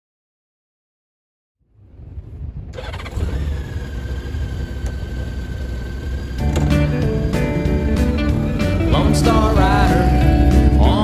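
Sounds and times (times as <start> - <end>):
motorcycle engine rumbling: 1.8 - 11.0
country guitar music: 6.2 - 11.0.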